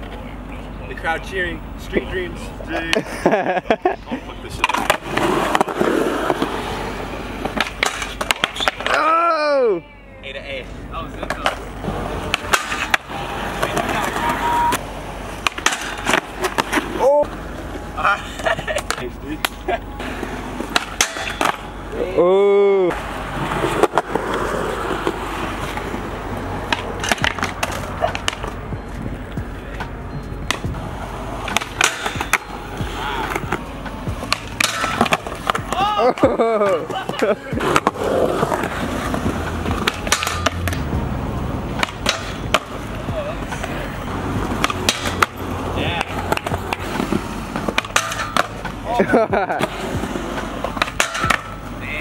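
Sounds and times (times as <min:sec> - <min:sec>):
skateboard wheels rolling on concrete: 0:00.0 - 0:52.0
skateboard grinding metal rail: 0:04.6 - 0:09.1, 0:11.8 - 0:18.9, 0:20.0 - 0:21.8, 0:31.0 - 0:40.9, 0:41.7 - 0:51.7
skateboard tail clacks: 0:07.4 - 0:09.1, 0:11.2 - 0:17.0, 0:26.6 - 0:30.8, 0:31.4 - 0:40.9, 0:41.7 - 0:43.8, 0:44.4 - 0:45.4, 0:46.0 - 0:51.8.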